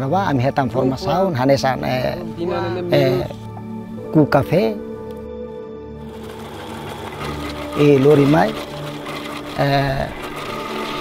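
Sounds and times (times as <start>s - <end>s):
coffee pulping machine running: 6.0s - 11.0s
water pouring: 6.1s - 11.0s.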